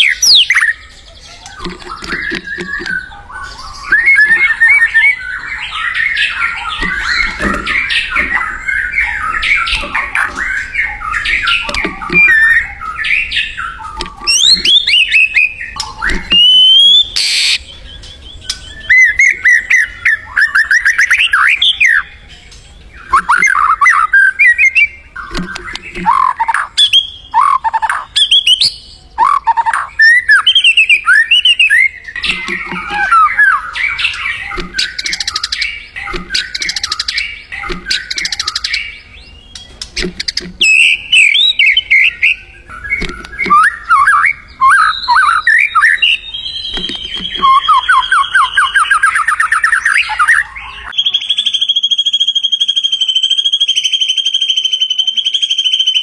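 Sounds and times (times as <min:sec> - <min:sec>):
songbird whistling and trilling: 0:00.0 - 0:22.3, 0:22.9 - 0:56.0.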